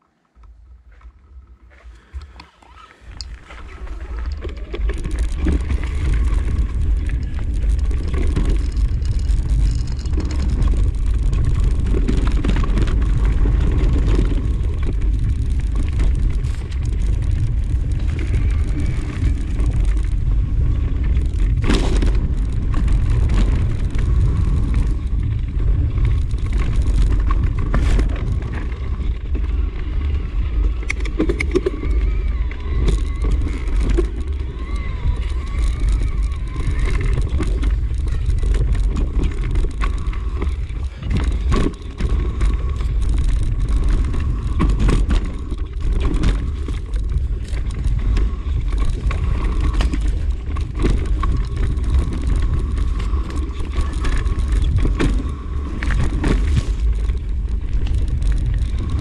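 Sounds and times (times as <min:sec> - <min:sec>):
wind rumble on microphone: 0:00.0 - 0:59.0
tyre noise on dirt: 0:00.2 - 0:59.0
bike knocks and rattles: 0:03.0 - 0:59.0.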